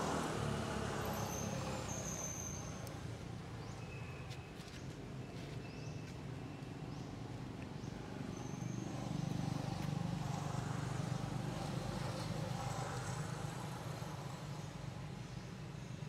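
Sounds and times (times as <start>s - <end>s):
vehicle engine passing by: 0.0s - 2.9s.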